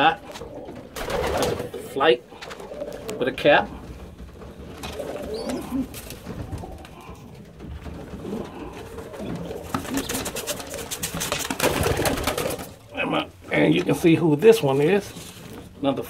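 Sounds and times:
pigeons cooing: 0.0 - 13.3.

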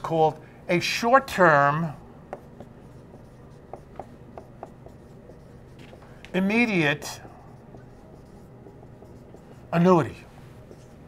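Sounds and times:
marker squeaking on whiteboard: 2.4 - 9.8.

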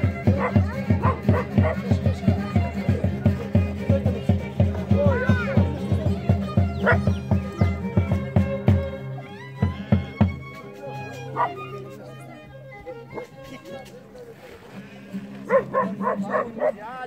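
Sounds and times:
drum beat: 0.0 - 11.7
held violin notes: 0.0 - 16.3
dog yelping: 0.3 - 1.9, 6.8 - 7.2, 11.3 - 11.7, 15.5 - 16.8.

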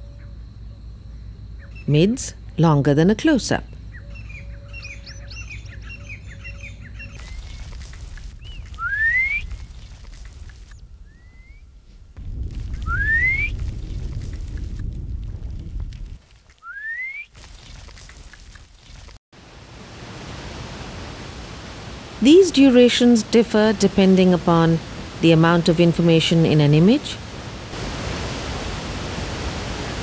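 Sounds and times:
small birds chirping: 3.5 - 11.6
wind rumble on microphone: 4.0 - 16.5
rising whistled call: 8.4 - 9.6, 11.0 - 11.7, 12.8 - 13.6, 16.6 - 17.3
steady hiss: 17.4 - 30.0.

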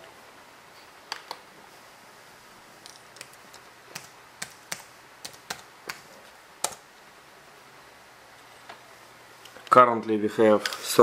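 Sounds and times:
laptop keys clicking: 2.9 - 6.9.

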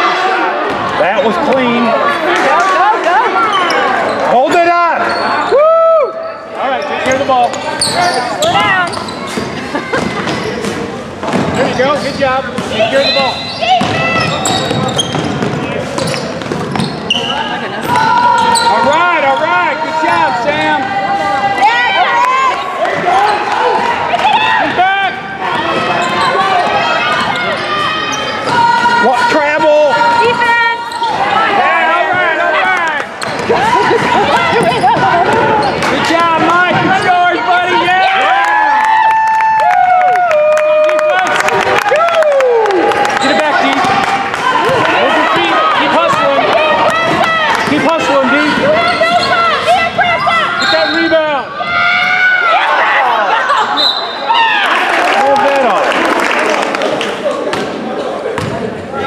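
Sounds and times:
voices shouting: 16.8 - 38.9, 41.2 - 55.8.

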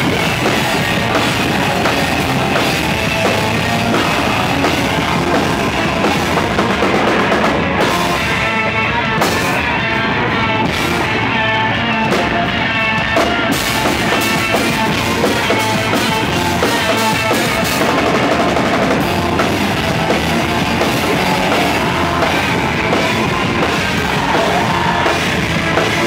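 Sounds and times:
drum kit: 0.0 - 26.0
electric guitar: 0.0 - 26.0.

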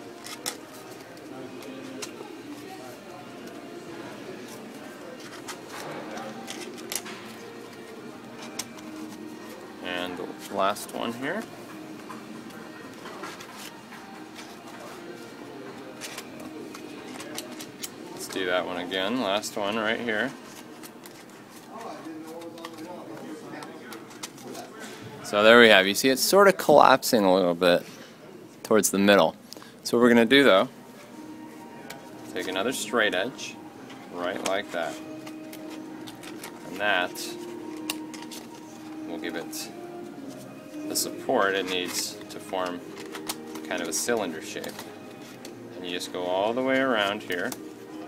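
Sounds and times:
plastic pieces handled: 4.4 - 18.6, 31.9 - 48.0
plastic pieces clicking and rustling: 5.2 - 7.4, 41.6 - 45.6.

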